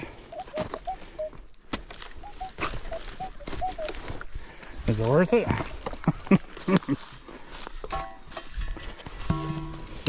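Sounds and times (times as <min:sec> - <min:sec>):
metal detector beeps: 0:00.2 - 0:01.4, 0:02.1 - 0:04.3, 0:04.9 - 0:05.8.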